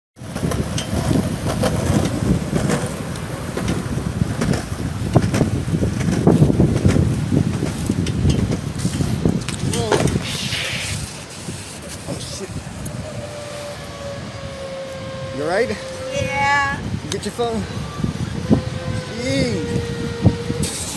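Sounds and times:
skateboard scrape: 0.2s - 14.0s, 20.6s - 20.9s
skateboard wheels rolling on concrete: 0.2s - 20.9s
wind buffeting microphone: 0.2s - 20.9s.

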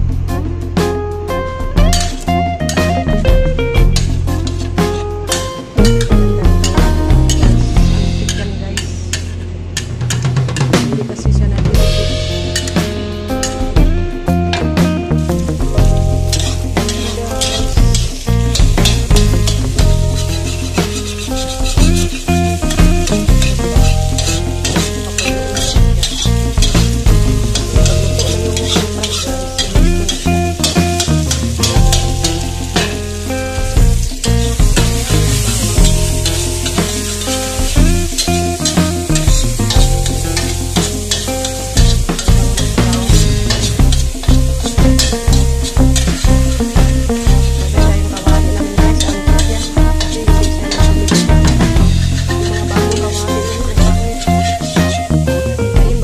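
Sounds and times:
background music with beat: 0.0s - 9.2s, 9.8s - 56.0s
metal spatula scraping pan: 1.9s - 2.8s, 8.3s - 10.8s, 12.5s - 13.6s, 15.9s - 55.0s
egg sizzling in hot oil: 15.5s - 54.7s.

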